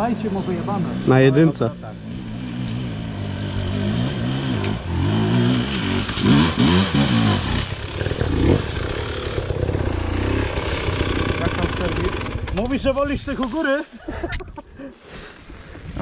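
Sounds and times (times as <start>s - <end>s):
dirt bike engine revving: 0.0s - 13.1s.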